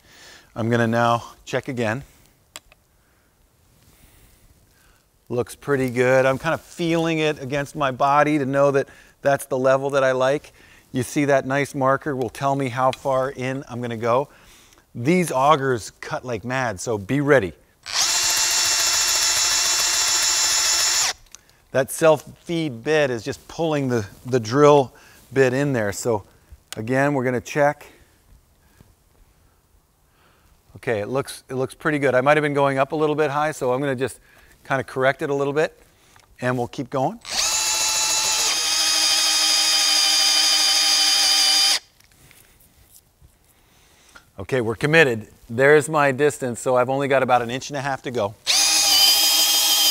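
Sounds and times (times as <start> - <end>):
cordless drill boring into wood: 17.8 - 21.3, 37.2 - 42.0, 48.4 - 49.9.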